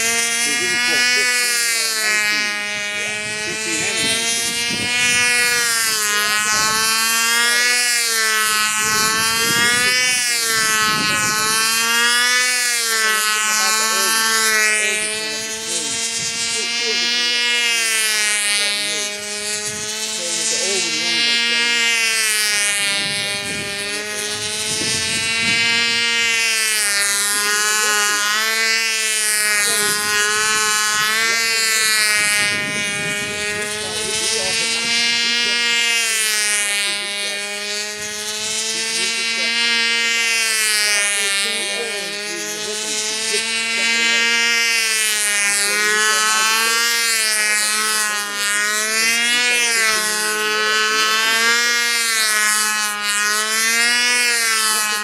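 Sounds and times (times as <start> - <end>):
model airplane engine buzzing: 0.0 - 55.0.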